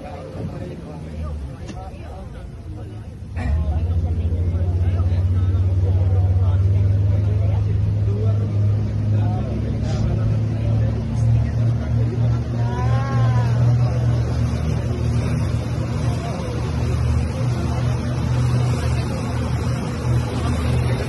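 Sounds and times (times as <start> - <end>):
boat engine droning: 0.0 - 21.0.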